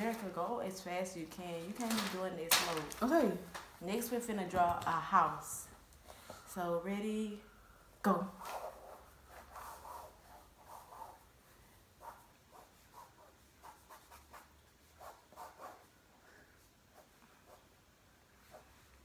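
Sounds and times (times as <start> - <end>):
pencil scratching on paper: 8.4 - 11.4, 12.0 - 15.9, 16.9 - 17.8.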